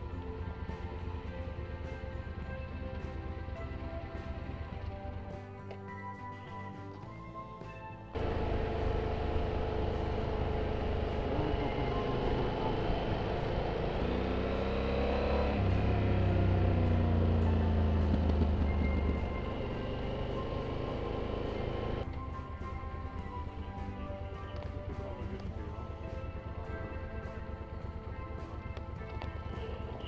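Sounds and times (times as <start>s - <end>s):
motorcycle engine running: 0.0s - 6.0s, 8.1s - 30.0s
background music: 0.0s - 30.0s.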